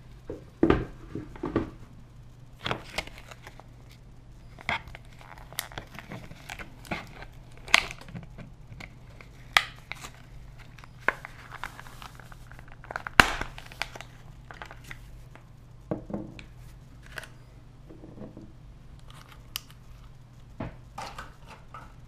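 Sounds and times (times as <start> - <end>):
plastic packaging crinkling: 2.6 - 15.5.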